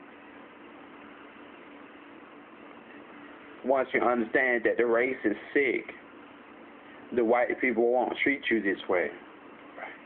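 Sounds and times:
faint hum: 0:00.0 - 0:10.0
steady low hiss: 0:00.0 - 0:10.0.

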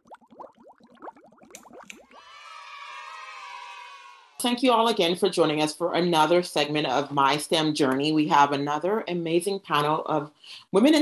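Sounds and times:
rising bubbling bloops: 0:00.0 - 0:02.3.

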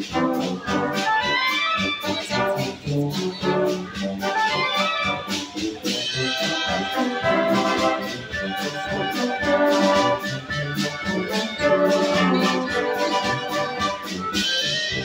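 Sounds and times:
brass band playing: 0:00.0 - 0:15.0.

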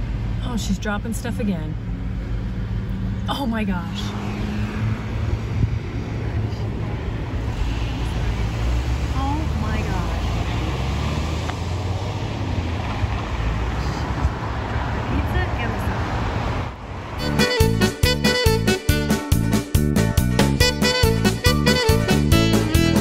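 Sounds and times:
road traffic rumble: 0:00.0 - 0:23.0
music with steady beat: 0:17.2 - 0:23.0.

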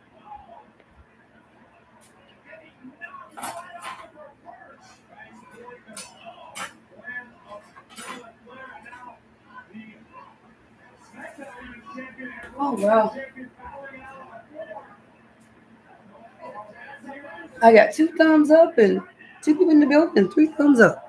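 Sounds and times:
faint voices: 0:00.0 - 0:21.0
dishes and utensils clinking: 0:03.3 - 0:04.1, 0:07.5 - 0:09.0.

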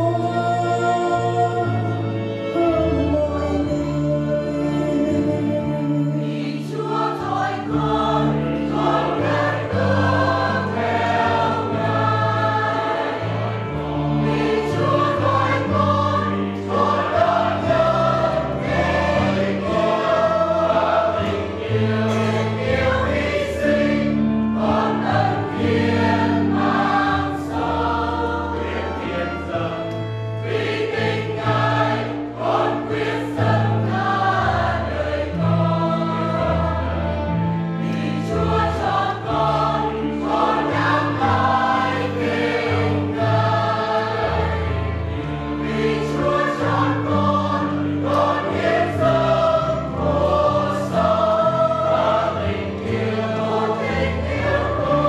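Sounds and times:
choir singing a hymn: 0:00.0 - 0:55.0.

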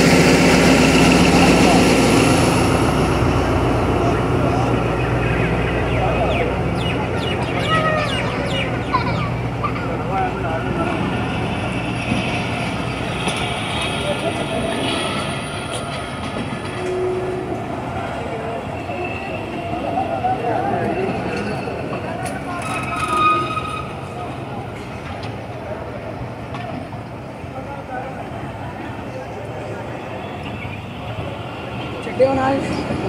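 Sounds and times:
train coaches rolling on rails: 0:00.0 - 0:33.0
voices: 0:00.0 - 0:33.0.

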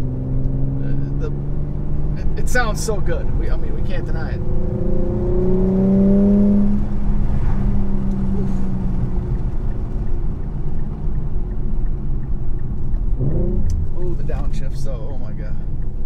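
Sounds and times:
car engine drone from inside cabin: 0:00.0 - 0:16.0.

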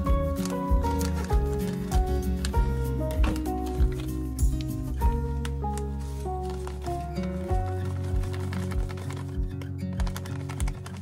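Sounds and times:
light melody over bass line: 0:00.0 - 0:11.0.

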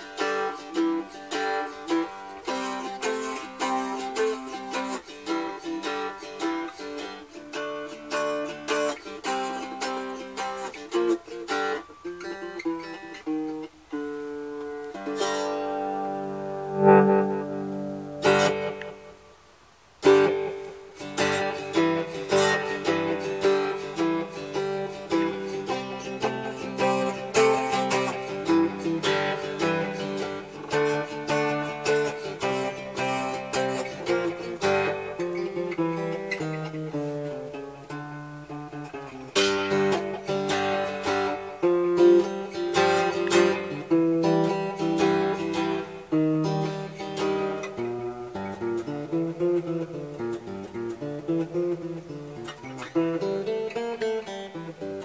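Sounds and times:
cigar box guitar picked and strummed: 0:00.0 - 0:55.0.

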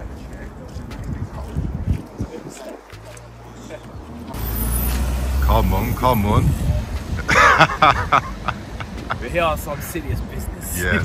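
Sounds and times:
vehicle engine rumbling: 0:00.0 - 0:11.0
man talking: 0:05.4 - 0:07.1, 0:09.1 - 0:11.0.

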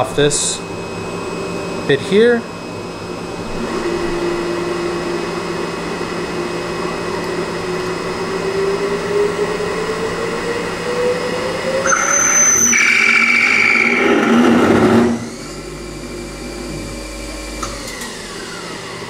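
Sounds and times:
machine low hum: 0:00.0 - 0:19.0
lathe spindle whine rising: 0:02.5 - 0:19.0.

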